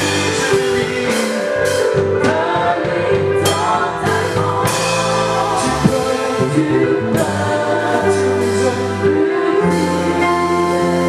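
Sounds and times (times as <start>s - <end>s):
band with drum kit: 0.0s - 11.0s
drum and cymbal hits: 0.0s - 11.0s
man singing into a microphone: 3.4s - 11.0s.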